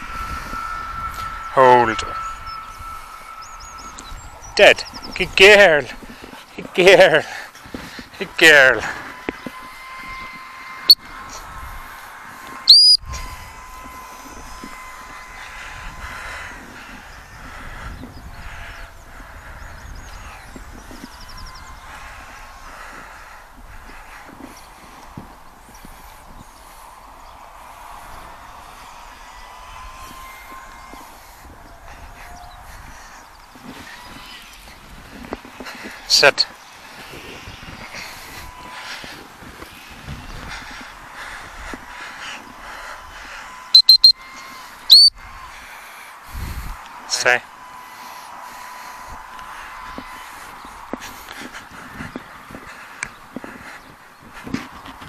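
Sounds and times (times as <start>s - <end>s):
high-pitched dog whistle blast: 12.7s - 13.0s, 43.8s - 44.2s, 44.9s - 45.1s.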